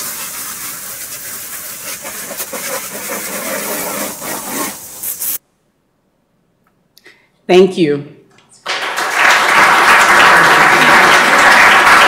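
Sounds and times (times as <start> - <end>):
rushing hiss from speakers: 0.0 - 5.4.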